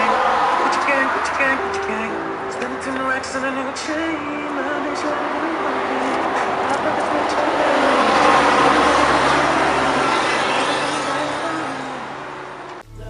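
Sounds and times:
vehicle passing on street: 0.0 - 12.8.

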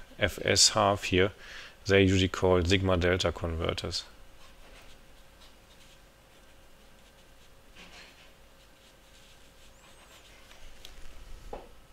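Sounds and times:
pen scratching on paper: 4.4 - 10.6.

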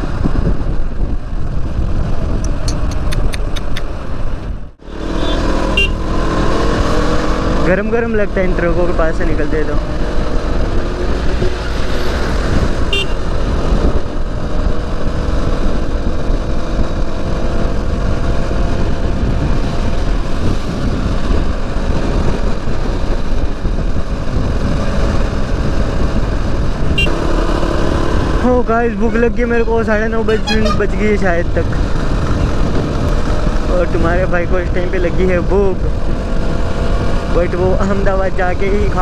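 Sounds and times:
wind rush on microphone: 0.0 - 39.0
motorcycle engine running: 4.6 - 28.6.

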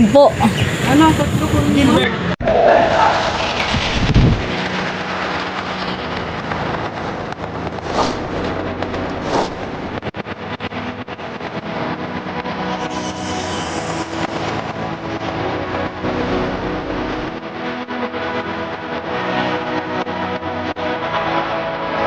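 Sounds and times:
steady low drone: 1.8 - 22.0
quick whooshes: 2.4 - 6.2, 7.8 - 10.0
deep boom: 2.4 - 10.6.

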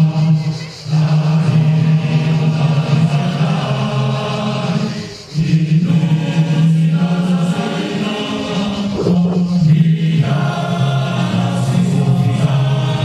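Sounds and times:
group singing long held notes: 0.0 - 13.0.

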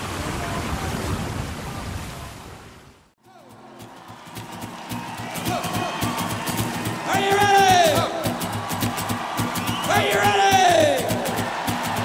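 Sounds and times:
wind: 0.0 - 4.0
rushing water: 0.0 - 7.1.

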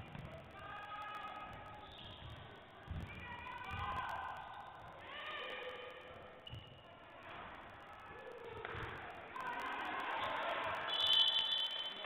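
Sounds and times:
referee's whistle blast: 10.8 - 12.0.

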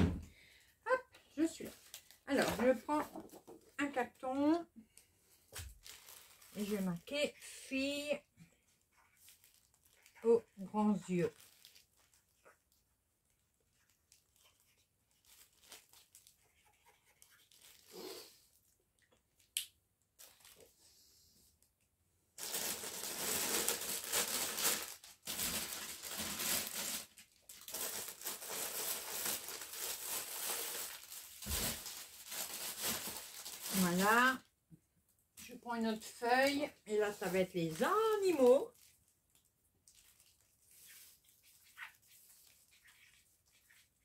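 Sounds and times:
plastic sleeves crinkling: 1.3 - 18.3, 20.1 - 20.8, 22.4 - 34.4, 35.4 - 44.0.

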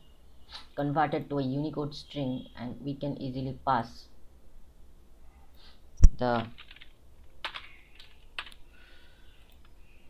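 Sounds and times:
computer keyboard keystrokes: 6.3 - 8.6.

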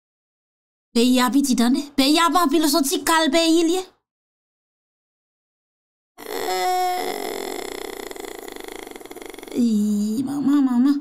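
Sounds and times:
person's rattly drone voice: 6.2 - 11.0.

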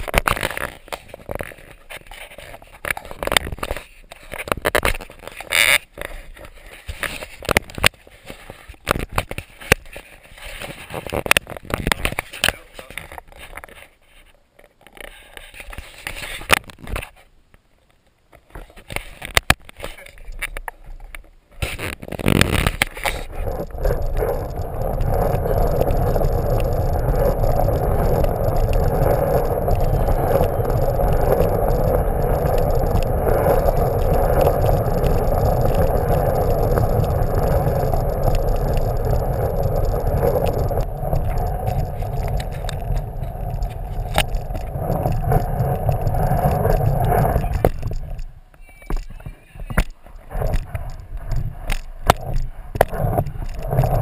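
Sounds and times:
plastic wheels rolling on hardwood floor: 21.6 - 48.3.

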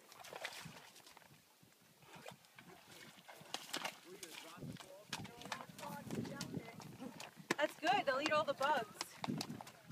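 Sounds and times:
horse hooves splashing in water: 0.0 - 9.9
voices talking: 5.1 - 9.2.

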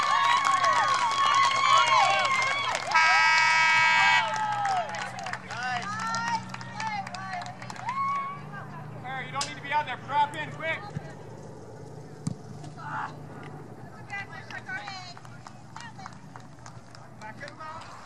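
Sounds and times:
crowd cheering and shouting: 0.0 - 7.0.

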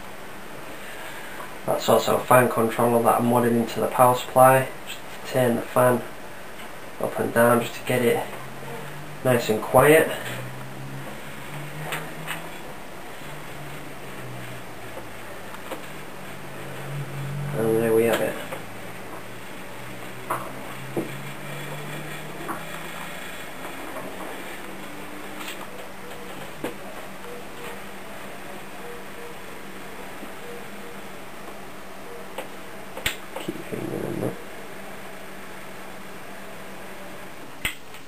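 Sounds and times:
computer fans whirring: 0.0 - 38.0.

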